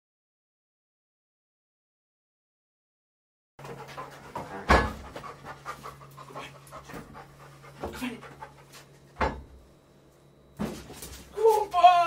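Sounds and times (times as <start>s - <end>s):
dog panting: 3.6s - 9.2s.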